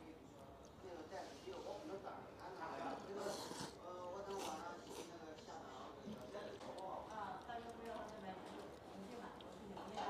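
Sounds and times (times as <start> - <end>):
faint voices of diners: 0.0 - 10.0
noodles slurped: 2.9 - 6.3.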